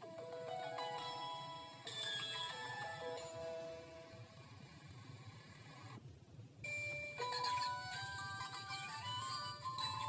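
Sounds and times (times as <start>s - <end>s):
jingle music: 0.0s - 4.1s, 7.2s - 10.0s.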